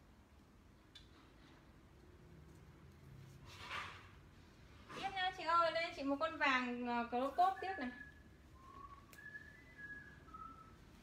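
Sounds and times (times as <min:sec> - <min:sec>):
faint whistle-like tones: 0:05.9 - 0:11.0.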